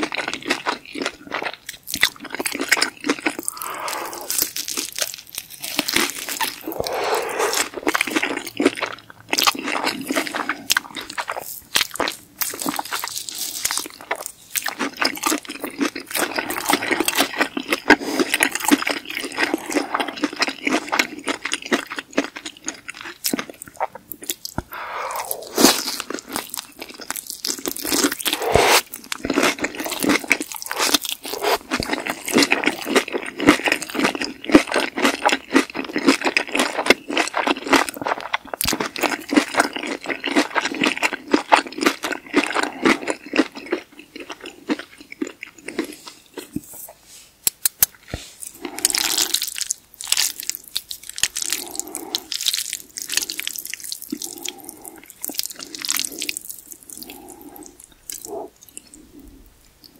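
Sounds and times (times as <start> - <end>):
crunchy chewing: 0.0 - 59.9
mouth sounds: 3.4 - 4.5, 6.4 - 7.9, 24.5 - 26.4, 27.8 - 29.0, 30.6 - 31.8, 51.3 - 53.4, 54.1 - 59.9.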